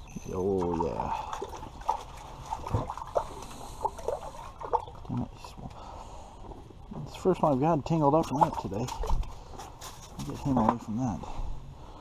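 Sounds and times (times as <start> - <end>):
water splashing and dripping: 0.5 - 5.8, 7.6 - 9.4.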